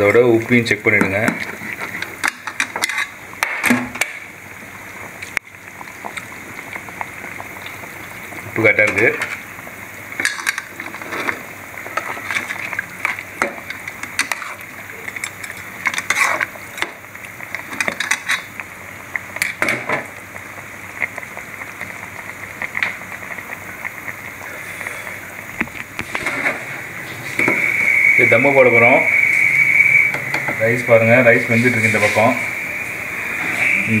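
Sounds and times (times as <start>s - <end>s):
bubbling pot hiss: 0.0s - 34.0s
ladle scraping metal pot: 15.2s - 16.5s.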